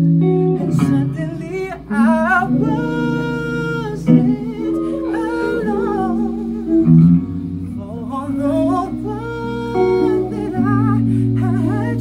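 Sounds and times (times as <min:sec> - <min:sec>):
sustained guitar chords: 0:00.0 - 0:12.0
man singing with vibrato: 0:00.5 - 0:12.0.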